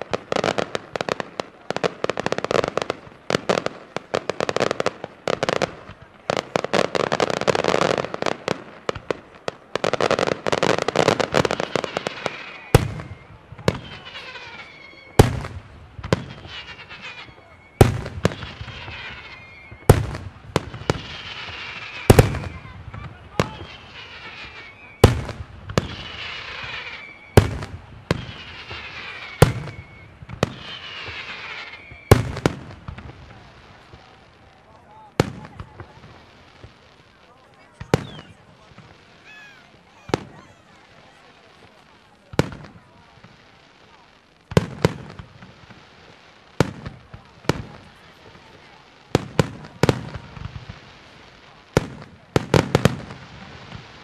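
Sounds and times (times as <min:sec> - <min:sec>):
rapid firework crackling: 0:00.0 - 0:54.0
falling whistle tone: 0:16.2 - 0:18.0, 0:18.8 - 0:19.9, 0:23.5 - 0:25.2, 0:26.0 - 0:27.4, 0:28.2 - 0:32.2.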